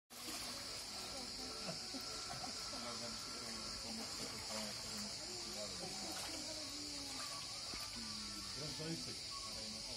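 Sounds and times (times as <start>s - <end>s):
cicadas buzzing: 0.1s - 9.9s
distant people chatting and calling: 0.2s - 9.9s.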